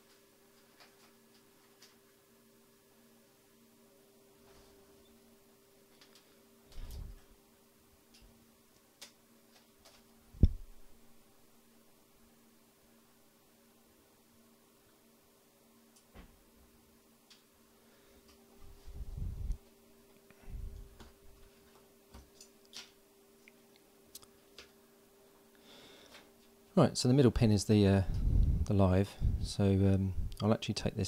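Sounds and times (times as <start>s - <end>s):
faint electrical hum: 0.0s - 31.0s
dull thump: 10.4s - 10.7s.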